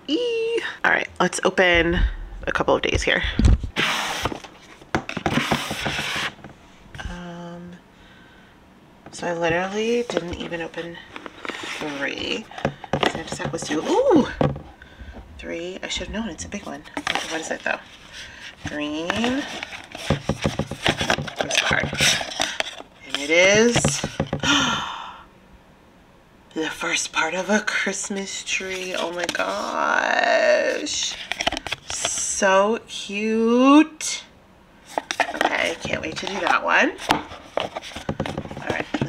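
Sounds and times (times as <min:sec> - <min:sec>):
cardboard boxes rubbing and scraping: 0:05.3 - 0:06.4, 0:11.3 - 0:12.4
hand rummaging in cardboard drawer: 0:16.5 - 0:24.1, 0:34.9 - 0:39.0.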